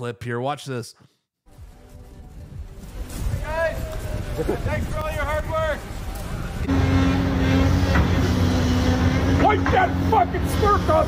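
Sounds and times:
engine idling low drone: 0:06.2 - 0:11.0.

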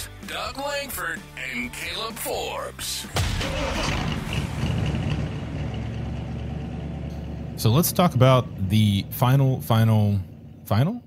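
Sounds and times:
vehicle engine idling: 0:03.2 - 0:11.0.

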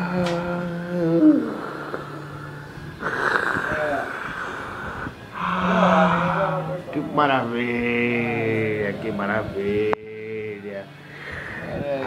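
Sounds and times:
man making wordless vocal sounds: 0:00.0 - 0:01.9.

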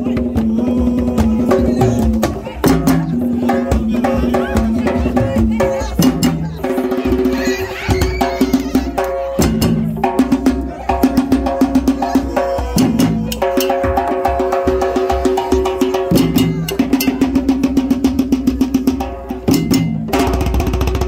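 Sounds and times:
hand drums in fast rhythm: 0:00.0 - 0:21.0.

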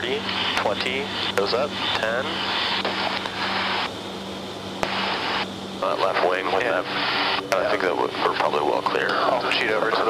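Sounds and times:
intercom hiss: 0:00.0 - 0:03.9, 0:04.8 - 0:10.0
turboprop engines droning: 0:00.0 - 0:10.0.

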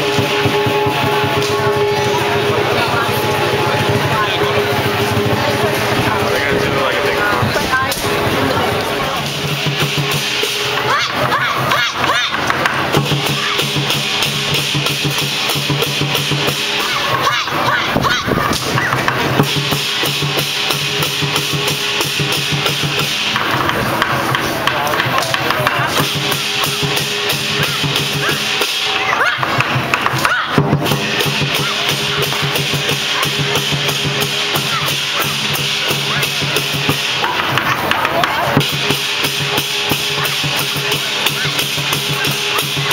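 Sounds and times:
cymbals clashing: 0:00.0 - 0:42.9
large drum beaten fast: 0:00.0 - 0:42.9.

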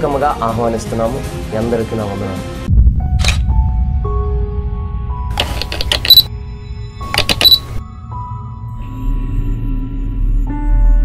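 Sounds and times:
camera shutter clicks: 0:05.3 - 0:06.3, 0:07.1 - 0:07.8
short high beep: 0:07.2 - 0:07.7.

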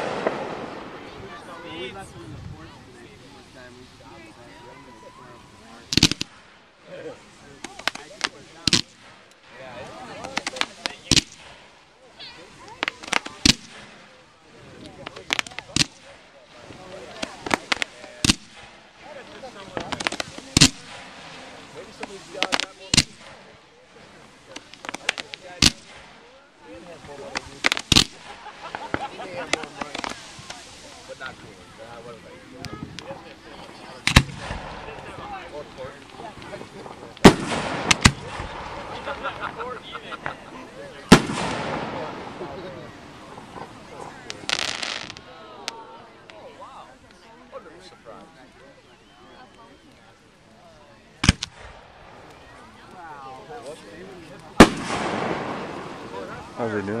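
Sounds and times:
firework double bang: 0:00.0 - 0:01.4, 0:27.1 - 0:30.7, 0:33.6 - 0:35.4, 0:36.0 - 0:39.8, 0:41.0 - 0:45.3, 0:54.6 - 0:56.6
fireworks bursting with sharp bangs: 0:00.0 - 0:47.2, 0:51.1 - 0:57.0
faint background voices: 0:00.0 - 0:57.0.

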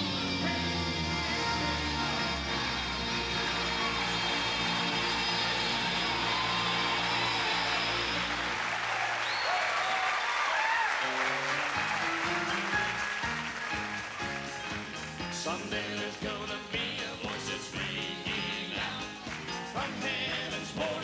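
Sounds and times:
gospel quartet singing held chord: 0:00.0 - 0:09.0, 0:15.3 - 0:21.0
piano and band playing: 0:00.0 - 0:21.0
audience applauding and cheering: 0:00.4 - 0:15.9, 0:17.2 - 0:21.0.

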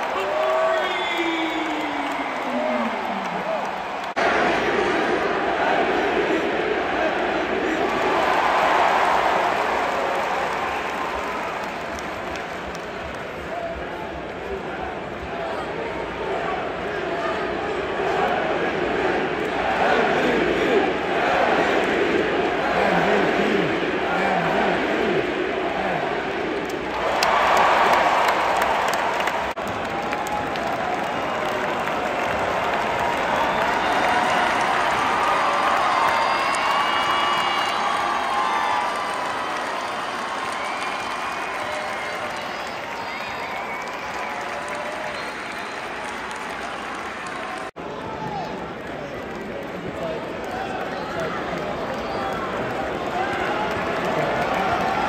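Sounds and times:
crowd clapping: 0:00.0 - 0:06.4, 0:07.0 - 0:14.6, 0:24.1 - 0:55.0
crowd cheering and shouting: 0:00.0 - 0:12.1, 0:13.0 - 0:48.8.

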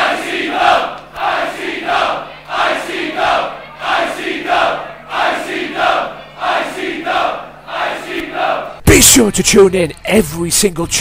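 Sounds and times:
crowd chanting in unison: 0:00.0 - 0:08.8.

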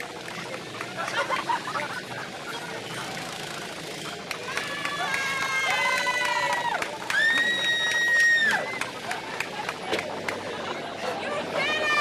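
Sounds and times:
people screaming: 0:04.4 - 0:09.2.

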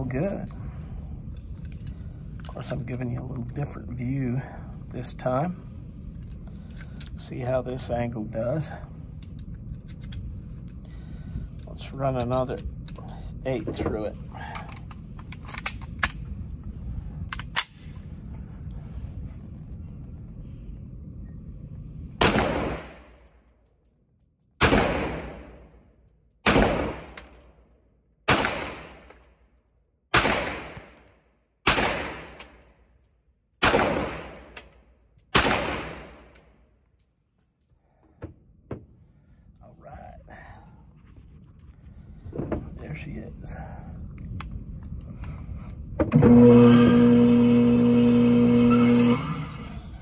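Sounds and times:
pistol shots echoing indoors: 0:30.1 - 0:32.7, 0:33.6 - 0:34.6.

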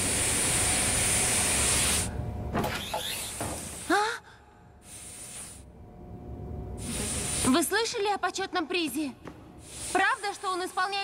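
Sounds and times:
loud hiss of air: 0:00.0 - 0:02.2, 0:03.0 - 0:04.0, 0:04.8 - 0:05.7, 0:06.8 - 0:07.8, 0:09.6 - 0:11.0.

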